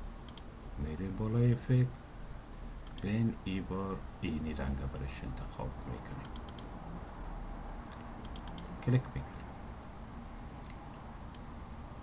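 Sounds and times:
computer mouse clicks: 0.2s - 0.5s, 2.8s - 3.1s, 6.2s - 6.7s, 7.9s - 8.7s
person speaking: 0.8s - 2.0s, 2.9s - 6.5s, 7.9s - 9.6s.

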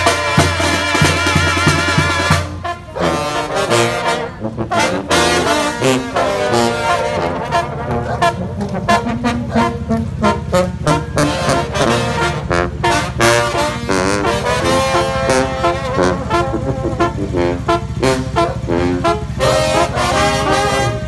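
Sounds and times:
bass drum and snare beat: 0.0s - 2.6s
brass band playing brisk tune: 0.0s - 21.0s.

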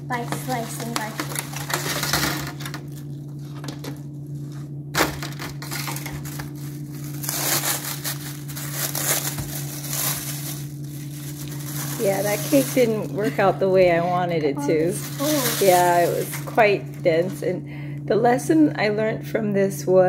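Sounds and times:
aluminium foil crinkling: 0.1s - 17.4s
plastic wrap rustling: 0.1s - 17.4s.

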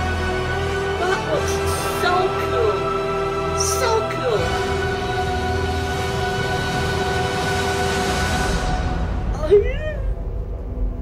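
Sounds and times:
sustained orchestral chord: 0.0s - 9.3s.

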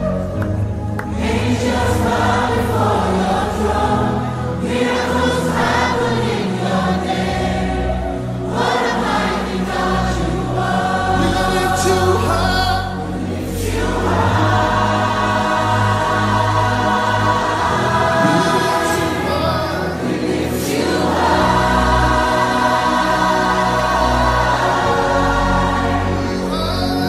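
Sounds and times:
choir singing: 0.0s - 27.0s
sustained low bass notes: 17.6s - 20.2s.

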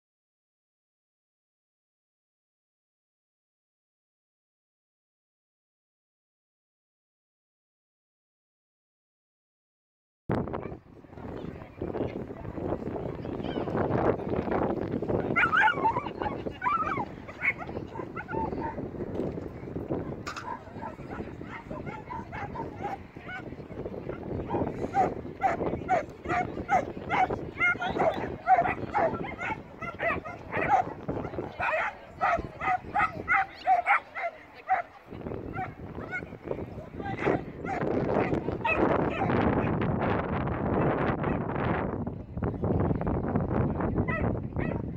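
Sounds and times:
dog barking high yaps: 15.4s - 18.7s, 25.0s - 30.9s, 31.6s - 34.8s.

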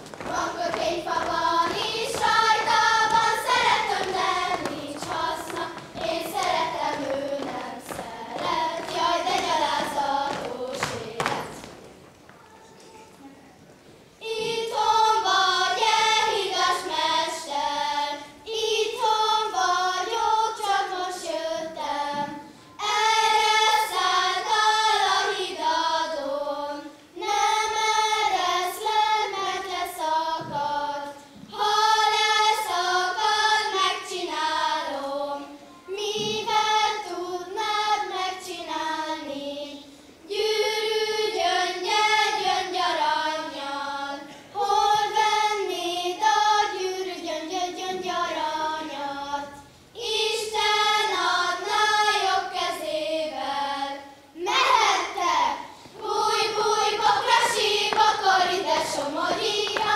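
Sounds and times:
girls singing in unison: 0.0s - 11.9s, 14.2s - 59.9s.

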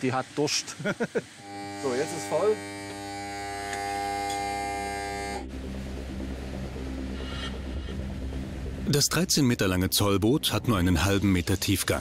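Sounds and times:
electric buzz of fuel pump: 1.1s - 5.5s
low steady hum: 1.2s - 12.0s.

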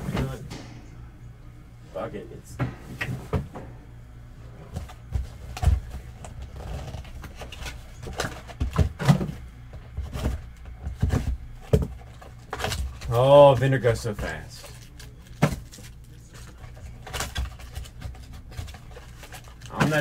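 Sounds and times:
cardboard boxes tapping and scraping: 4.7s - 14.4s.

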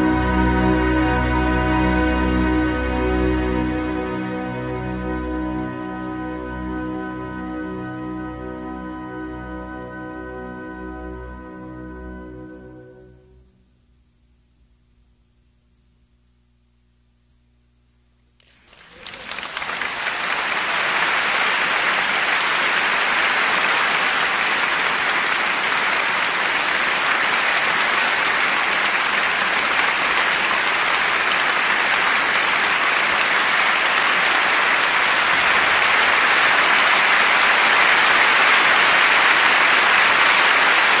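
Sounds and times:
audience applauding: 18.4s - 41.0s.

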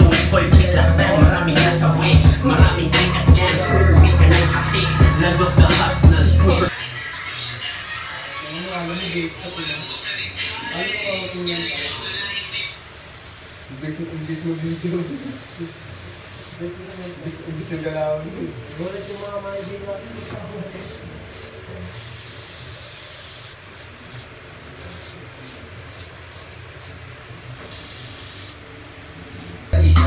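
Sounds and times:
spray can hissing: 8.0s - 18.0s, 18.6s - 27.0s, 27.6s - 28.6s, 29.3s - 29.7s.

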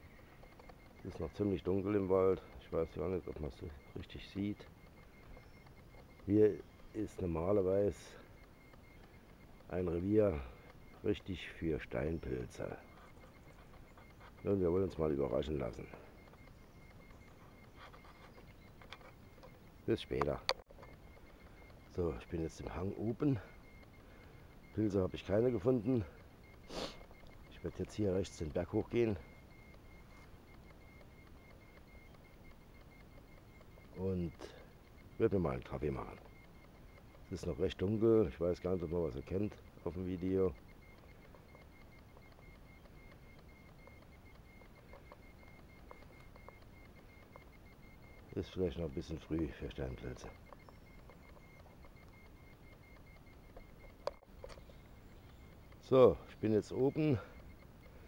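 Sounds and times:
faint forest ambience: 0.0s - 58.0s
faint ticks: 0.0s - 58.0s
rapidly pulsing high tone: 0.0s - 58.0s.

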